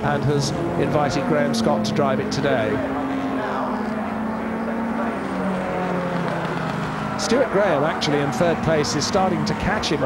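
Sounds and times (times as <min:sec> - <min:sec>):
racing car engines: 0:00.0 - 0:10.0.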